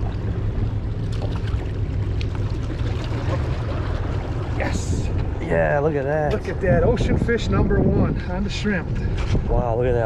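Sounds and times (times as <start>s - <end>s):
wind buffeting microphone: 3.2s - 10.0s.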